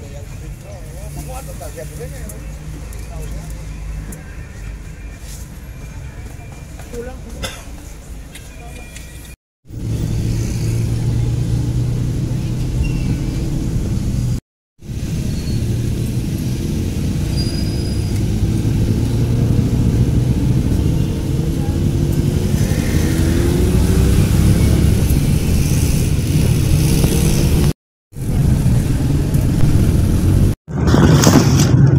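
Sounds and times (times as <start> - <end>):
vehicle engine drone: 9.7 - 31.8.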